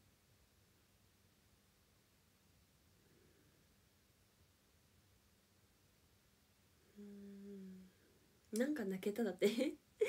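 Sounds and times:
woman humming: 6.9s - 8.0s.

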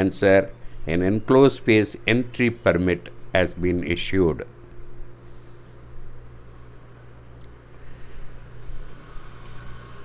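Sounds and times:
background noise haze: 0.0s - 10.0s
steady low hum: 0.0s - 10.0s.

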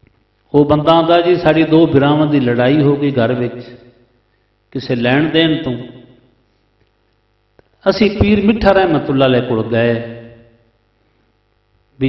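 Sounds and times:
faint electrical hum: 0.0s - 12.0s
man speaking through loudspeakers: 0.6s - 3.8s, 4.8s - 5.9s, 7.8s - 10.4s.

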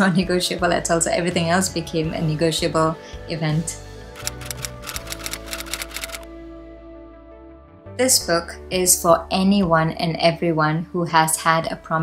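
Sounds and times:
soft background music: 0.0s - 12.0s
typewriter keys clacking: 4.2s - 6.2s.

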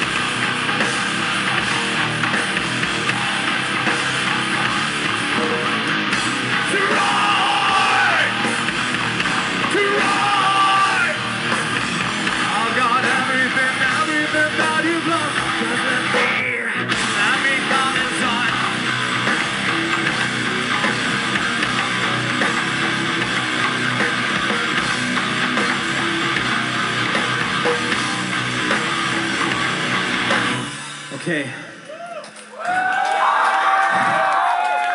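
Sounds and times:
drum kit: 0.0s - 31.7s
distorted electric guitars: 0.0s - 31.8s
bass guitar: 0.0s - 32.1s.

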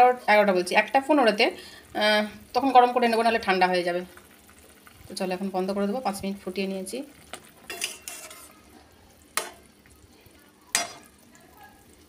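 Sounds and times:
spatula scraping metal pan: 7.7s - 8.6s.

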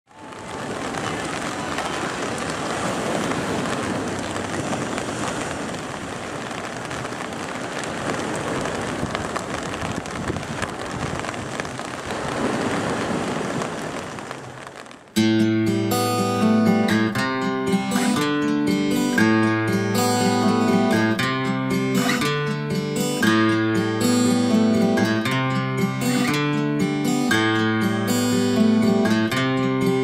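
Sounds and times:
rain falling on wet paving: 0.1s - 30.0s.

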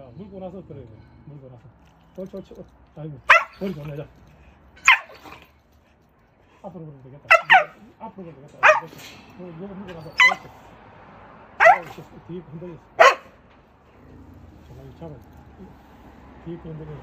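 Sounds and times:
dog barking: 3.3s - 3.9s, 4.8s - 5.5s, 7.3s - 7.9s, 8.6s - 9.0s, 10.1s - 10.6s, 11.6s - 12.1s, 13.0s - 13.4s.

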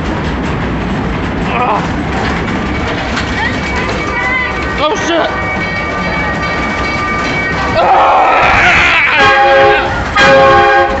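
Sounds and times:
roller coaster rumbling on track: 0.0s - 11.0s
held squealing tones: 6.6s - 9.4s.

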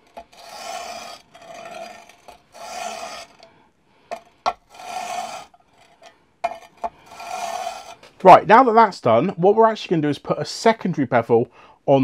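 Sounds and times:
honing guide scraping abrasive film: 0.0s - 3.5s, 4.1s - 8.1s.

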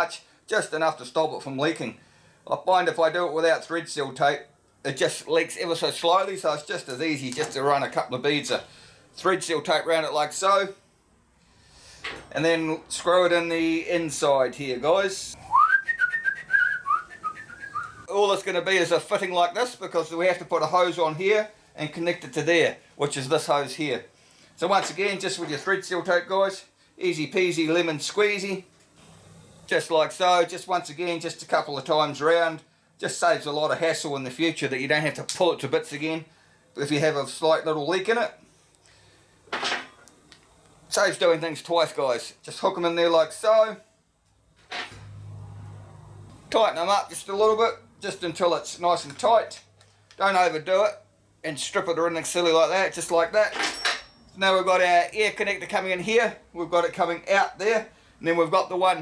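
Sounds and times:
person whistling a tune: 15.4s - 18.0s.

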